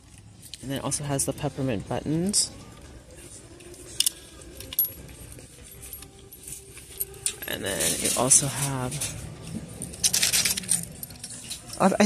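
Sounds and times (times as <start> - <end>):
chain bracelet jingling: 2.6 - 12.0.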